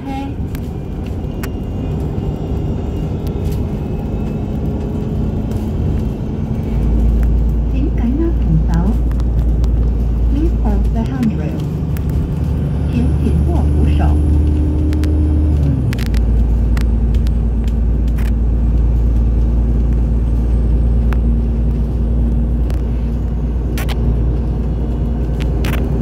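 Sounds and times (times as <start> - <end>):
bus engine and road noise: 0.0 - 26.0.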